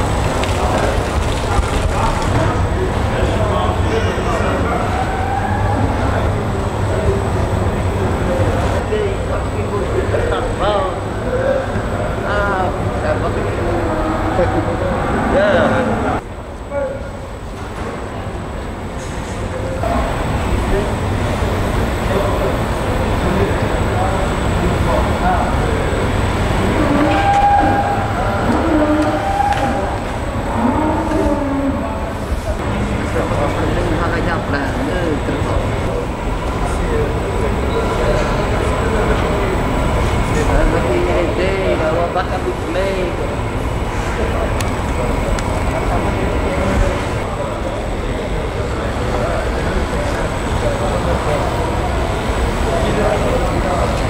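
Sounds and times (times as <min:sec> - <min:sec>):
people talking indistinctly: 0:00.0 - 0:17.3, 0:18.1 - 0:54.0.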